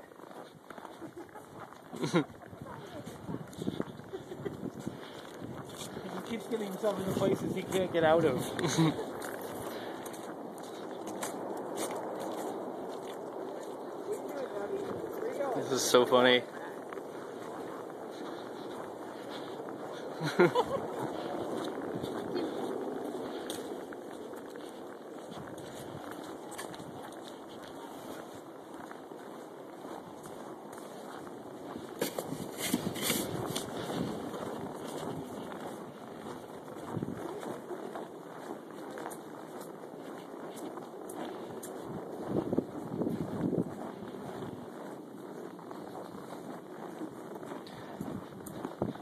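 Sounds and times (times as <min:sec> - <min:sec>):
wind on microphone: 0:00.0 - 0:06.1, 0:06.9 - 0:15.8, 0:16.8 - 0:28.5, 0:29.8 - 0:39.4, 0:40.7 - 0:49.0
footsteps through deep snow: 0:00.0 - 0:49.0.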